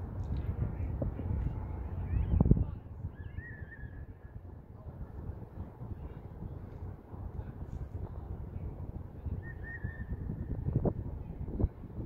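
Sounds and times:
wind buffeting microphone: 0.0 - 12.0
high wavering whistle tone: 9.4 - 10.3.

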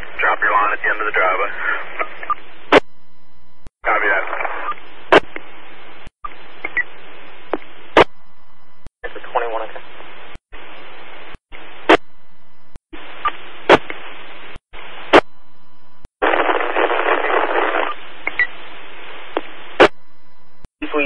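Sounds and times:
garbled radio voice: 0.0 - 2.2, 3.8 - 4.7, 9.0 - 9.8
radio squelch hiss: 0.0 - 2.8, 3.8 - 8.1, 9.0 - 12.0, 16.2 - 19.9.

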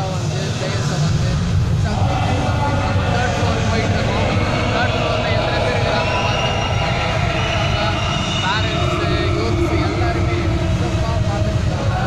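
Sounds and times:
loud low rumble: 0.4 - 12.0
distant voices: 1.8 - 12.0.

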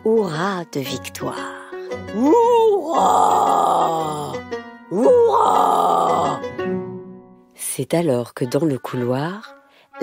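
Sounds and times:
soft background music: 0.0 - 10.0
person whooping: 2.2 - 6.4.

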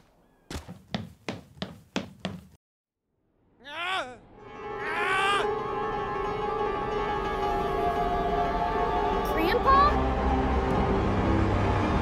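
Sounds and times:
music: 4.3 - 12.0.

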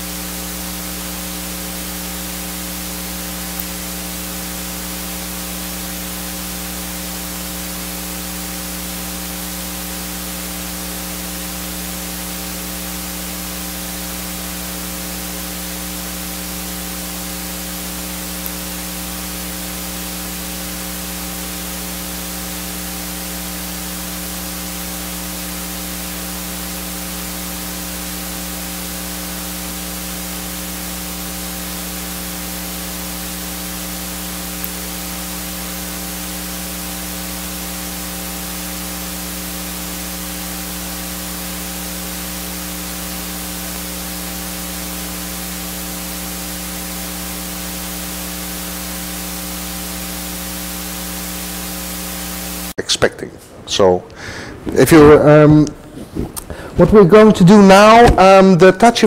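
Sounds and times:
steady hiss: 0.0 - 53.0
electrical hum: 0.0 - 59.0.

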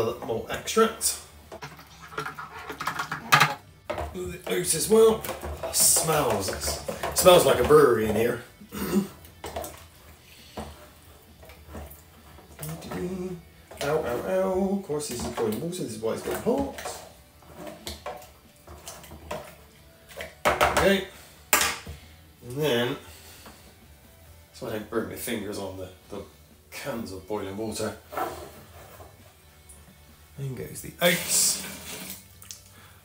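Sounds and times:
spoon stirring in metal tin: 1.5 - 8.4.

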